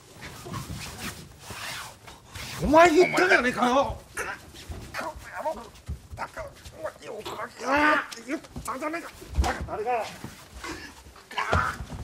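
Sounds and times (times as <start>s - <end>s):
heavy thump on mats: 9.3s - 9.8s, 11.5s - 12.0s
men grunting and crying out: 10.6s - 12.0s.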